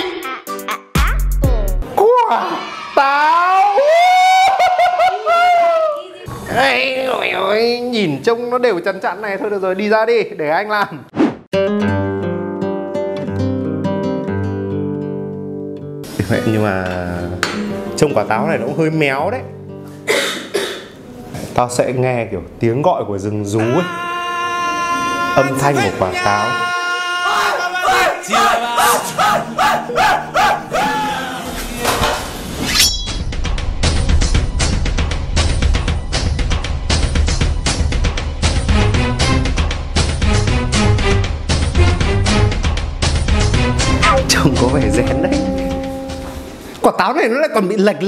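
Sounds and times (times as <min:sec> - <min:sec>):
man yelling warbling cries: 0:01.9 - 0:05.7, 0:23.5 - 0:31.8, 0:43.9 - 0:46.1
acoustic guitar with bass line: 0:11.6 - 0:16.2, 0:43.4 - 0:46.7
background music: 0:11.6 - 0:20.8, 0:23.5 - 0:48.0.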